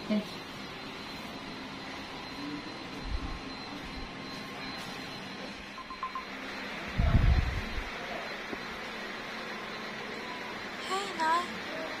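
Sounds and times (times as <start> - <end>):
short faint beeps: 0.1 - 10.7.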